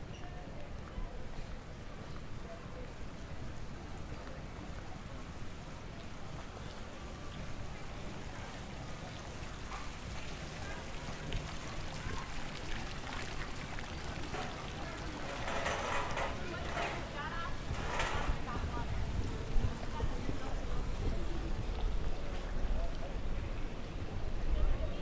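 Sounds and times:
fountain water splashing: 1.1s - 17.7s, 18.4s - 25.0s
murmur of voices: 13.3s - 25.0s.

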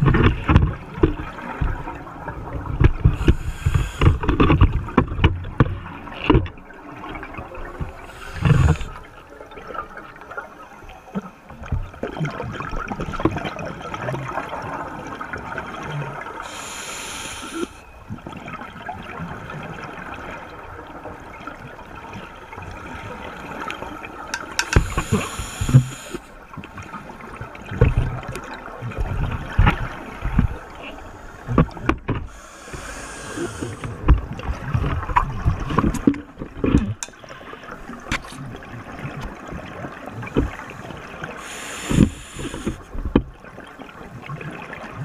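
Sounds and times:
steady underwater hiss: 3.0s - 4.7s, 6.9s - 11.7s, 15.9s - 18.2s, 19.6s - 28.3s, 28.9s - 34.8s, 39.9s - 43.2s
regulator bubbles hissing: 3.0s - 4.8s, 7.1s - 9.6s, 16.0s - 17.9s, 24.3s - 26.4s, 29.2s - 35.9s, 40.2s - 43.0s.

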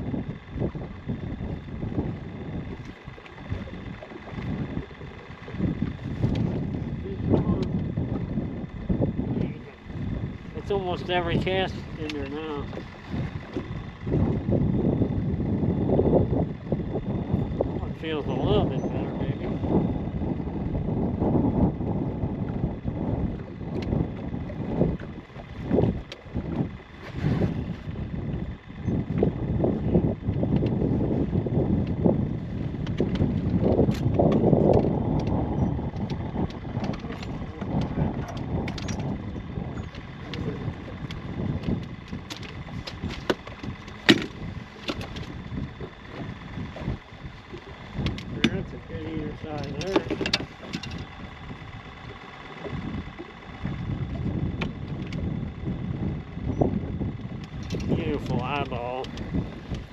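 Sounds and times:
wind buffeting microphone: 0.0s - 59.9s
handling knocks and clicks: 49.6s - 51.1s.

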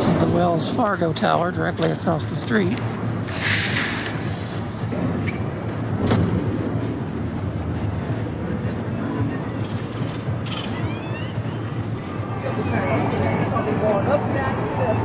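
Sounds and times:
low rumble of traffic: 0.0s - 15.0s
brief hiss: 3.2s - 4.9s.

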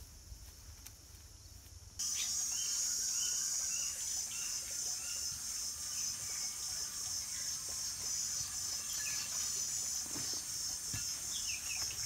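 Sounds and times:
quiet outdoor ambience: 0.0s - 12.0s
bird chirps: 2.0s - 12.0s
high-pitched insect drone: 2.0s - 12.0s.

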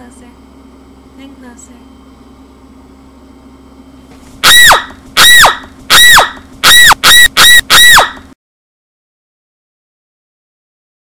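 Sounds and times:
squeaky honk sound effect: 4.5s - 8.2s.

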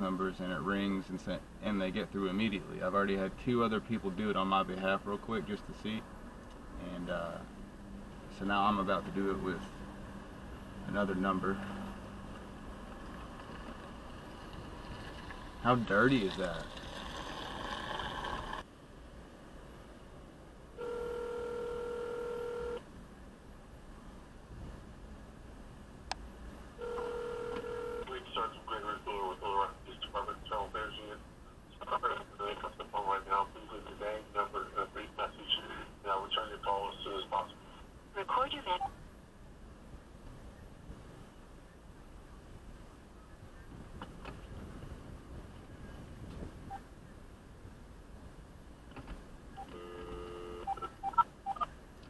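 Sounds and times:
phone ringback tone: 20.8s - 22.8s, 26.8s - 28.1s, 49.6s - 51.7s
voice over phone speaker: 28.0s - 37.6s, 38.2s - 38.9s.

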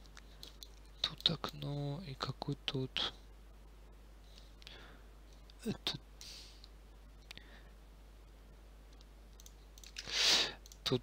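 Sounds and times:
person speaking: 0.4s - 3.3s, 5.4s - 6.6s, 9.9s - 11.0s
faint mouse clicks: 6.2s - 7.4s, 8.3s - 10.9s
loud breath close to microphone: 10.0s - 10.6s.

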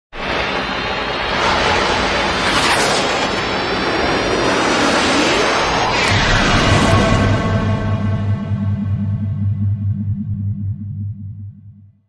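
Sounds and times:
loud rushing noise: 0.2s - 9.6s
sweeping whoosh: 0.6s - 11.0s
faint rising tones: 0.7s - 12.0s.

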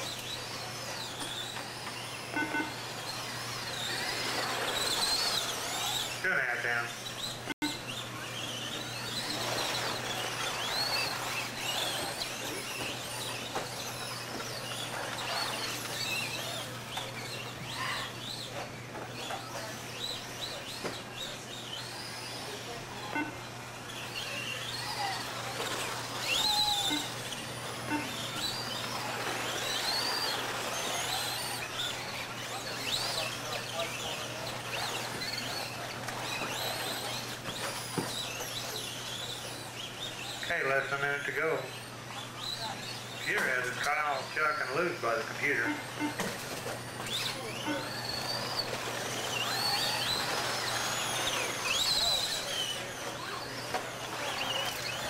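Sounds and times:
rc car motors whining: 0.0s - 55.0s.

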